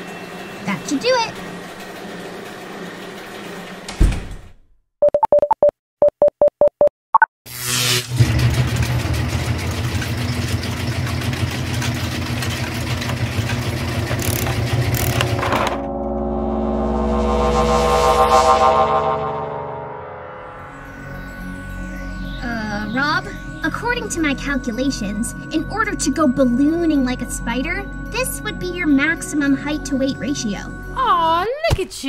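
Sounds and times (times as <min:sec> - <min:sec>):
low hum: 0:12.2 - 0:31.0
shimmering tone: 0:14.2 - 0:31.4.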